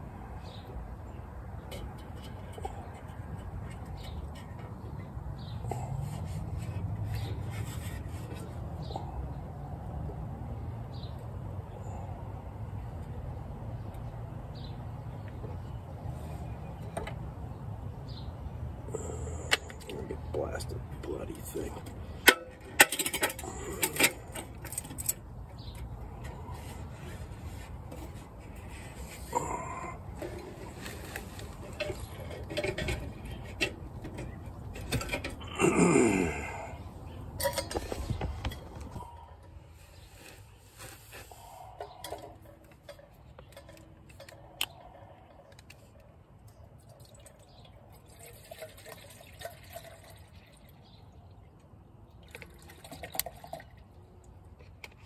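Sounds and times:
metal pots clinking: 0:22.2 - 0:25.2, 0:37.4 - 0:38.0
pots clattering: 0:37.4 - 0:39.2.

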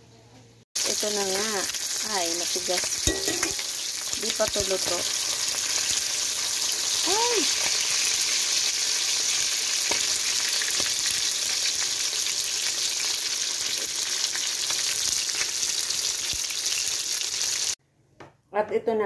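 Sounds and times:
fish sizzling in oil: 0:00.8 - 0:17.8.

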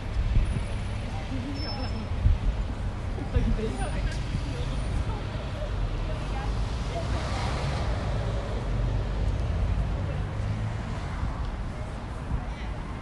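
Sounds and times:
city traffic rumble: 0:00.0 - 0:13.0
vehicle passing: 0:06.4 - 0:11.9.

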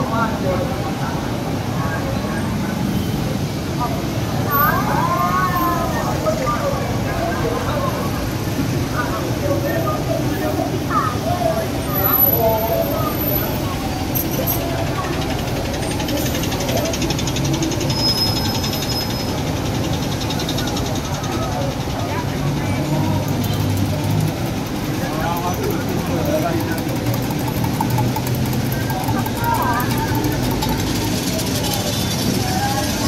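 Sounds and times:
people chattering: 0:00.0 - 0:33.0
road traffic hum: 0:00.0 - 0:33.0.

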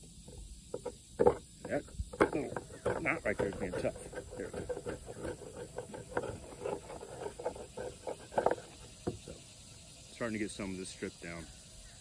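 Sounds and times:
knife scraping bark off wood: 0:00.7 - 0:09.4.

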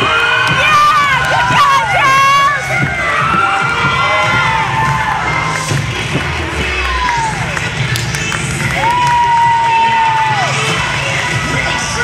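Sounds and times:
crowd cheering and shouting: 0:00.0 - 0:12.0
music playing: 0:00.0 - 0:12.0.

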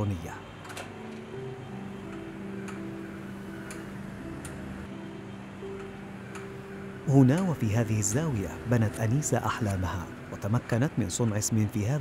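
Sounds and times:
held low note music: 0:00.0 - 0:12.0
light ticking: 0:02.0 - 0:02.9, 0:05.7 - 0:09.8.

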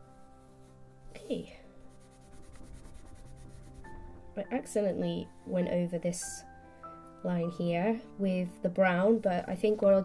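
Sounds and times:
pencil scratching on paper: 0:01.2 - 0:03.9.

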